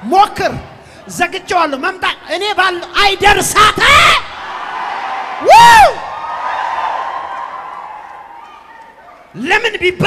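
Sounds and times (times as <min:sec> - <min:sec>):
congregation cheering: 0:02.1 - 0:09.6
preacher whooping into microphone: 0:03.8 - 0:09.3.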